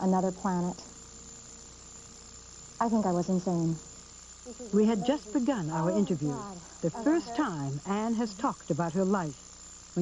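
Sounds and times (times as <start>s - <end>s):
woman speaking: 0.0s - 0.9s, 2.8s - 3.9s, 4.5s - 9.4s
background hiss and hum: 0.0s - 10.0s
thin high-pitched whine: 0.0s - 10.0s.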